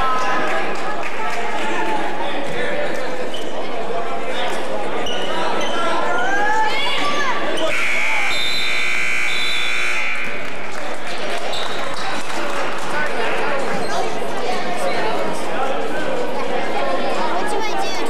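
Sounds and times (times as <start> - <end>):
crowd voices and shouting: 0.0 - 18.0
scoreboard horn: 7.7 - 10.5.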